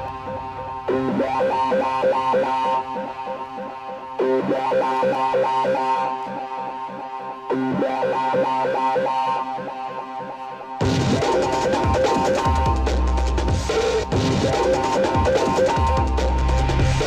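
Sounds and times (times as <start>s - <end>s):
trance music with synthesizers: 0.0s - 17.0s.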